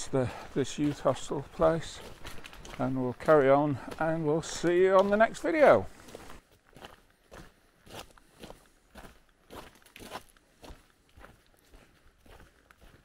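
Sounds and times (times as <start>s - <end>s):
footsteps on wet pavement: 0.0s - 13.0s.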